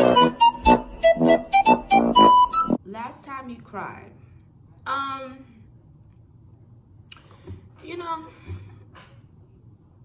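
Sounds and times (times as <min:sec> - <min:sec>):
electronic keyboard melody: 0:00.0 - 0:02.8.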